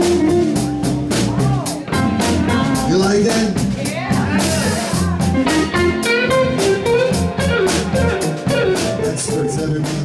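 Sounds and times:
blues guitar lead: 0.0s - 10.0s
steady drum beat: 0.0s - 10.0s
walking bass: 0.0s - 10.0s.

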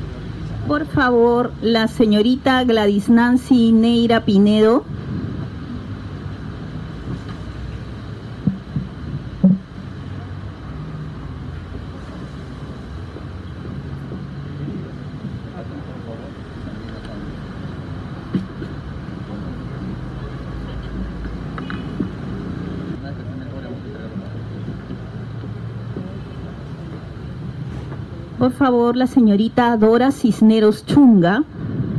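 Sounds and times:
background murmur: 0.0s - 31.9s
steady low rumble: 0.0s - 31.9s
short knocks: 8.4s - 9.7s.

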